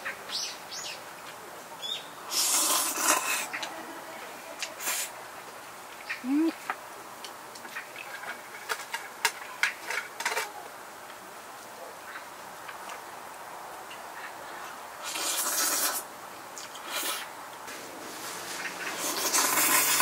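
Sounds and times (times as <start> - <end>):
slurping noodles: 2.3 - 3.5, 15.0 - 16.0, 18.8 - 20.0.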